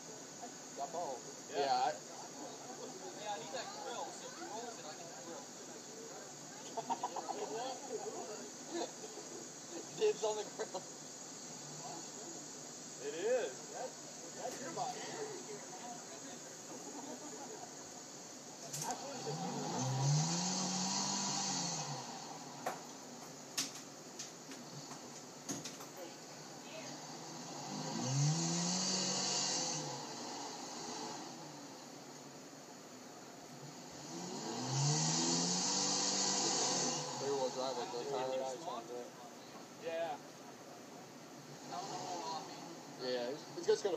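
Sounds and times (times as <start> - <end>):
truck engine revving: 18.8 - 23.2, 27.0 - 31.8, 33.6 - 38.0.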